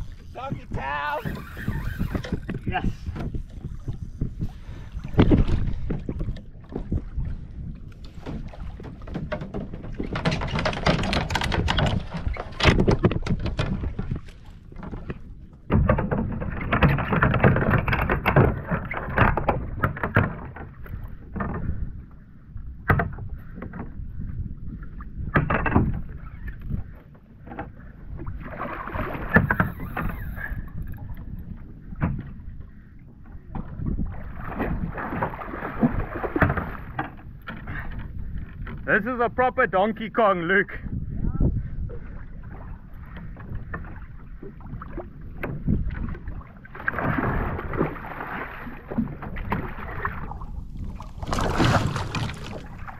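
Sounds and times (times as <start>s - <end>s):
wind on microphone: 0.0s - 39.0s, 40.8s - 52.9s
water sloshing against kayak: 0.0s - 52.9s.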